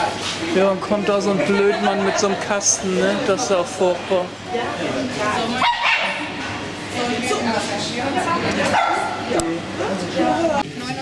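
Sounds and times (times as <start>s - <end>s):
people talking: 0.0s - 5.8s, 6.9s - 11.0s.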